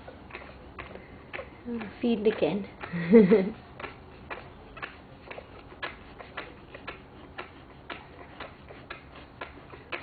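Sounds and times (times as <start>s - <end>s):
faint low hum: 0.0s - 10.0s
steady ticking: 0.0s - 10.0s.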